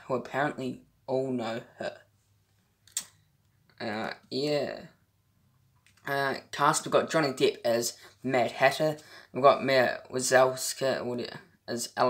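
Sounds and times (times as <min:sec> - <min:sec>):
person speaking: 0:00.0 - 0:02.1, 0:03.7 - 0:05.0, 0:05.9 - 0:12.0
person saying uh: 0:03.8 - 0:05.0.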